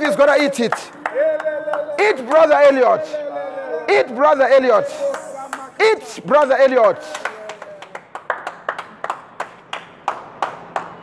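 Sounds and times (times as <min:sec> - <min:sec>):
hands clapping: 0:00.3 - 0:03.0, 0:04.8 - 0:11.0.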